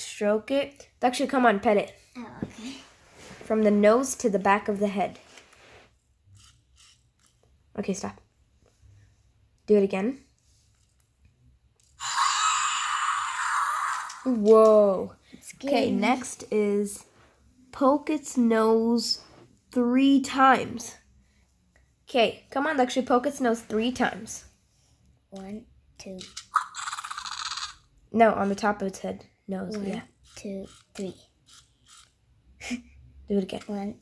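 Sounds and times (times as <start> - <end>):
toy dinosaur electronic roar: 12.0 - 14.3, 26.5 - 27.8.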